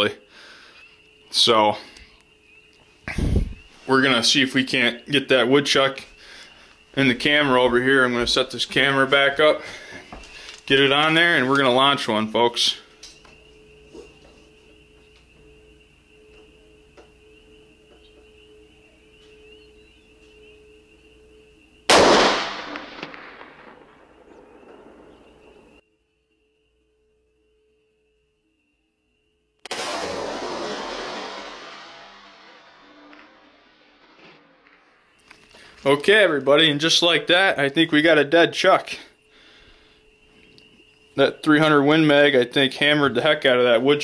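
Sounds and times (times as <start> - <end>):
rifle shot indoors: 21.9 - 25.3, 29.6 - 34.8.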